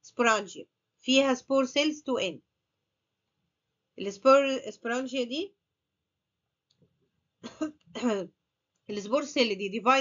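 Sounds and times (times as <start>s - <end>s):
person clearing throat: 7.4s - 8.3s.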